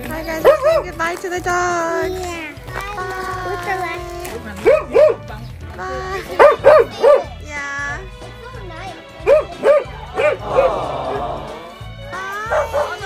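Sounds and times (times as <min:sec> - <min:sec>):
background music with steady beat: 0:00.0 - 0:13.0
dogs barking and yipping: 0:00.3 - 0:01.2, 0:04.4 - 0:05.4, 0:06.2 - 0:07.4, 0:09.2 - 0:10.8, 0:12.4 - 0:13.0
dog whining: 0:12.4 - 0:13.0.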